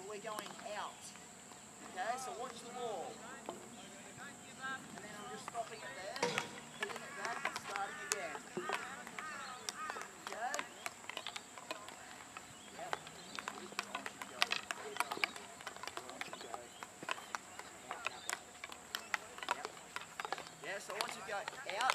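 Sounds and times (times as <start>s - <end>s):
voices in background: 0.0s - 21.9s
hockey sticks tapping balls: 4.8s - 21.9s.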